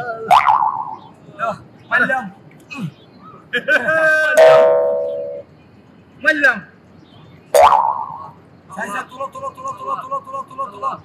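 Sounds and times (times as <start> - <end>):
comic boing sound effect: 0.3 - 1.0, 4.4 - 5.4, 7.6 - 8.3.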